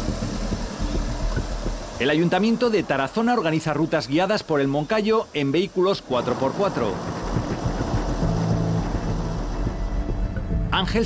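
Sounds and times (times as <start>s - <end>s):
vehicle engine and tyre hum: 0.0s - 2.0s, 6.1s - 10.8s.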